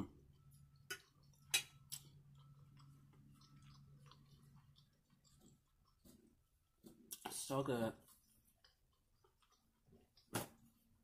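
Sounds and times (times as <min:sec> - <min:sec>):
faint steady hum: 0:00.0 - 0:07.3.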